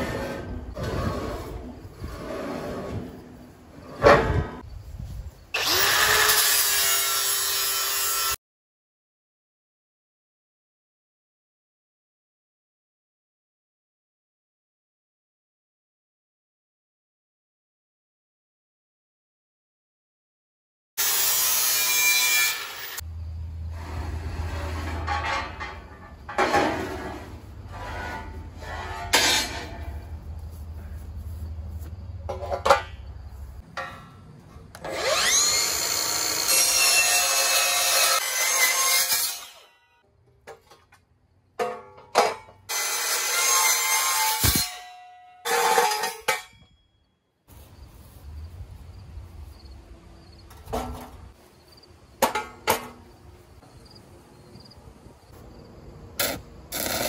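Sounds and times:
circular saw cutting steel: 0:05.6 - 0:08.4, 0:21.0 - 0:30.0, 0:34.7 - 0:40.0, 0:42.7 - 0:46.6, 0:56.2 - 0:57.0
angle grinder buffing steel: 0:34.8 - 0:39.7.

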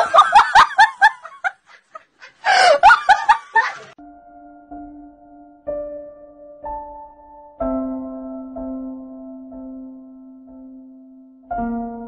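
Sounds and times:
person laughing hard: 0:00.0 - 0:04.0.

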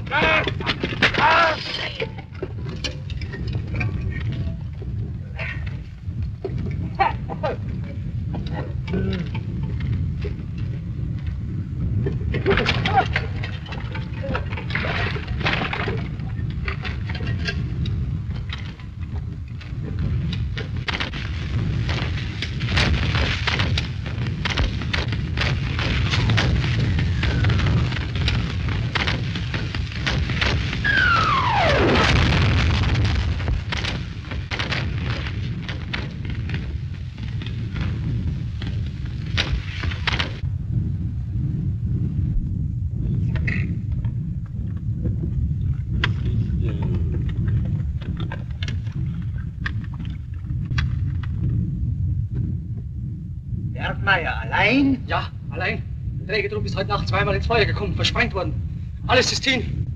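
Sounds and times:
low rumble: 0:00.0 - 0:59.9
crackle of shell bursts and gunfire: 0:20.4 - 0:40.4
falling shell whistle: 0:30.8 - 0:32.0.

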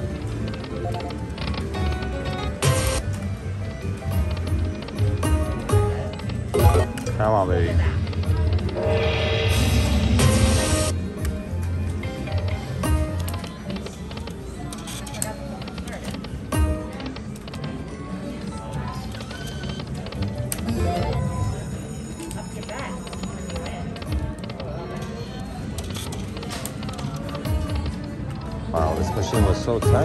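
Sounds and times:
slot machine reels clicking: 0:00.0 - 0:03.2, 0:04.0 - 0:10.9, 0:19.0 - 0:30.0
slot machine electronic music: 0:00.0 - 0:13.9, 0:15.7 - 0:18.4, 0:19.0 - 0:24.4, 0:26.2 - 0:30.0
casino chatter: 0:00.0 - 0:30.0.

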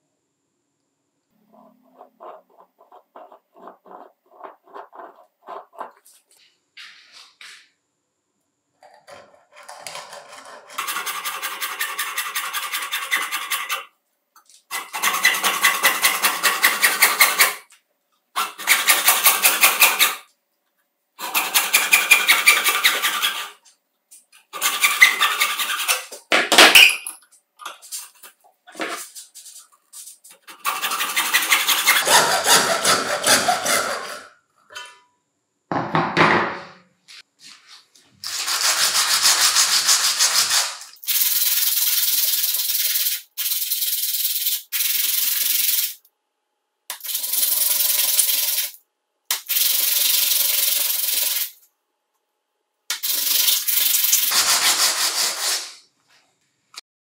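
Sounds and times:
hacksaw cutting plastic pipe: 0:09.2 - 0:13.8, 0:14.7 - 0:17.6, 0:21.2 - 0:23.6, 0:30.4 - 0:34.8
plastic rubbed on sandpaper: 0:37.6 - 0:46.0, 0:53.0 - 0:55.8.

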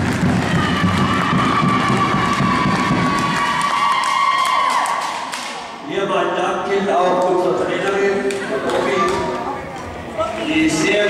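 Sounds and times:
people talking and calling out: 0:05.0 - 0:11.0.

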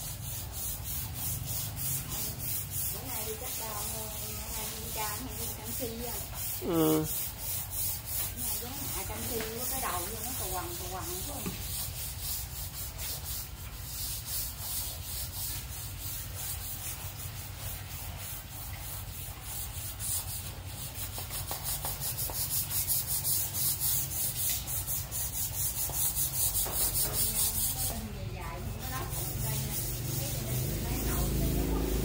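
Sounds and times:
rhythmic rubbing hiss: 0:00.0 - 0:32.0.

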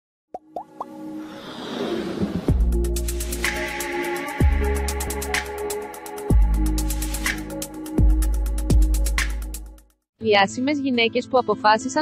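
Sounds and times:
whoosh: 0:01.2 - 0:02.9
electronic music: 0:02.5 - 0:09.8.

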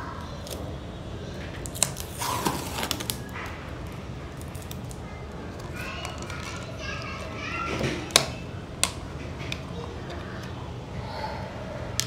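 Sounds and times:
children chattering and playing: 0:00.0 - 0:12.0
low background hum: 0:00.0 - 0:12.0.

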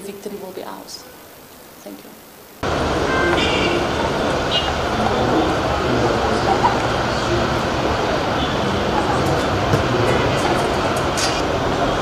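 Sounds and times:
loud outdoor background noise: 0:00.0 - 0:12.0
indistinct voices: 0:02.6 - 0:12.0.

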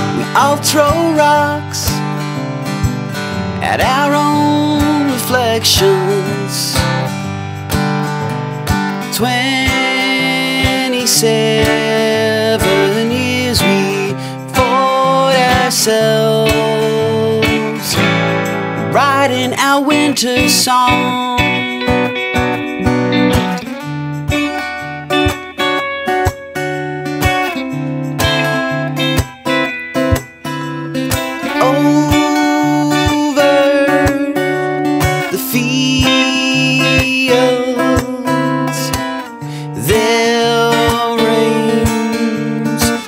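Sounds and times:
acoustic guitar playing: 0:00.0 - 0:43.0
held melody notes: 0:06.8 - 0:43.0
steady beat: 0:20.9 - 0:33.2.

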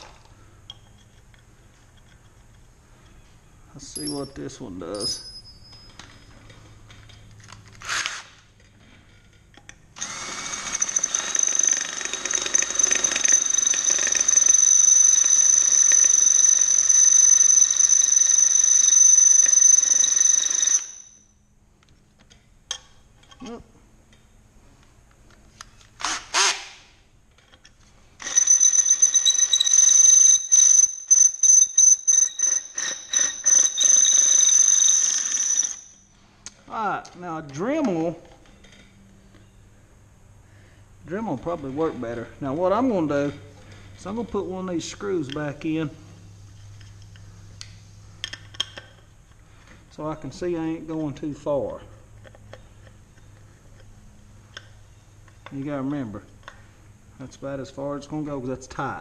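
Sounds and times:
cordless drill boring into metal: 0:10.0 - 0:20.9, 0:32.2 - 0:35.8.

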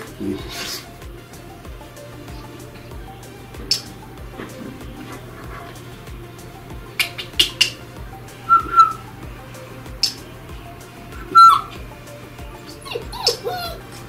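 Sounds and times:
puppy squeaking and yipping: 0:12.8 - 0:13.8
puppy whining: 0:12.8 - 0:14.0.

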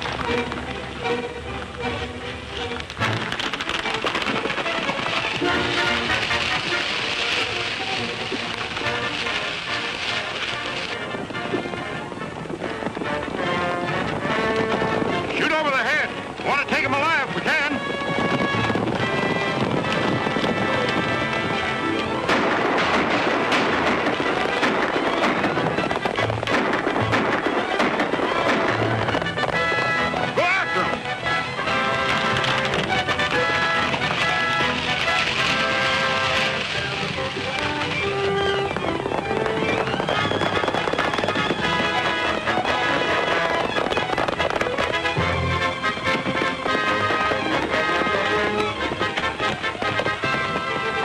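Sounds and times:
galloping horses' hooves: 0:00.0 - 0:51.0
orchestral music: 0:00.0 - 0:51.0.

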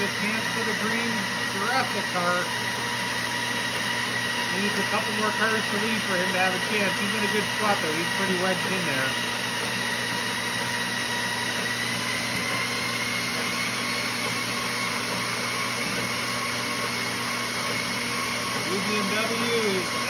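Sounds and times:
treadmill motor whine: 0:00.0 - 0:20.0.

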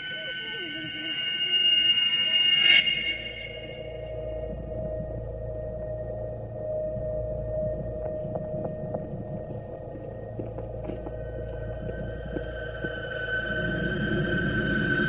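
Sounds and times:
deep rumble: 0:00.0 - 0:15.0
low eerie drone: 0:00.0 - 0:15.0.

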